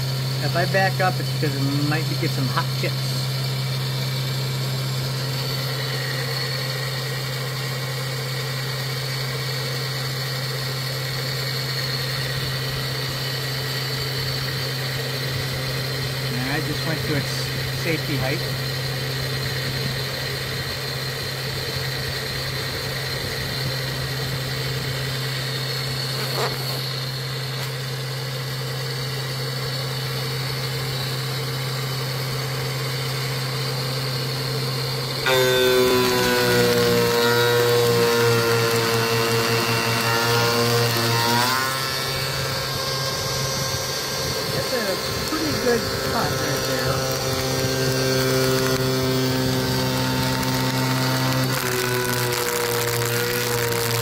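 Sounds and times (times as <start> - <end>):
face mill cutting metal: 0.0 - 54.0
mill spindle whining: 0.0 - 54.0.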